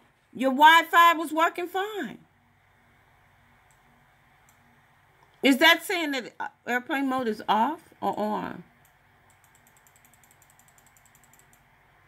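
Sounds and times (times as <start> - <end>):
faint rapid ticking: 8.8 - 11.7.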